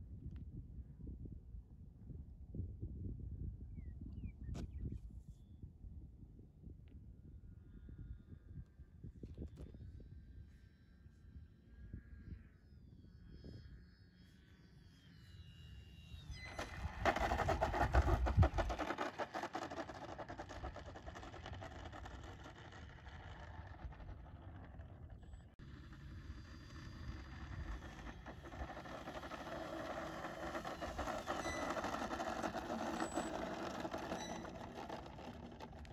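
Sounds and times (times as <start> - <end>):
model plane motor whine: 11.6 - 35.9
wind buffeting microphone: 16.5 - 19.0.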